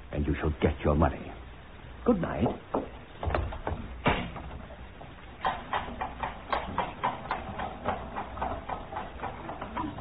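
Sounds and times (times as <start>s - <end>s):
horse hooves trotting: 2.4s - 10.0s.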